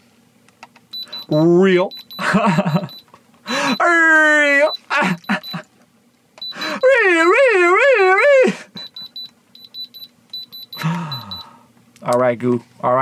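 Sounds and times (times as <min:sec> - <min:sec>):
high-pitched electronic beeps: 0:01.0 - 0:03.0, 0:08.8 - 0:11.5
man groaning: 0:03.5 - 0:05.2, 0:06.6 - 0:08.7, 0:10.8 - 0:11.4
man wailing: 0:03.5 - 0:05.6, 0:06.6 - 0:08.7.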